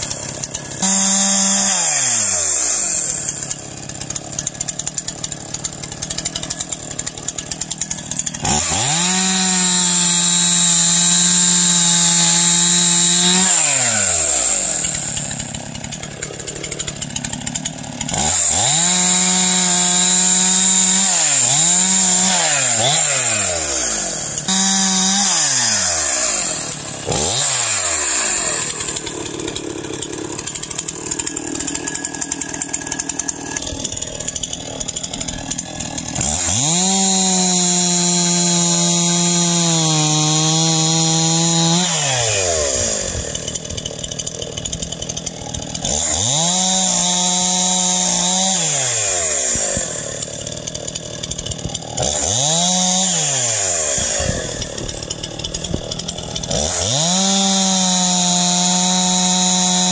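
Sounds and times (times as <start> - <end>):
chainsaw cutting logs: 0.0 - 59.9
chainsaw idling and revving: 0.0 - 59.9.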